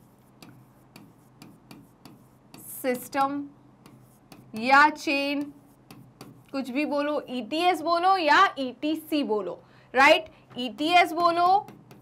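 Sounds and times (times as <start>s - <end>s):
pen tip tapping on board: 11.1s - 12.0s.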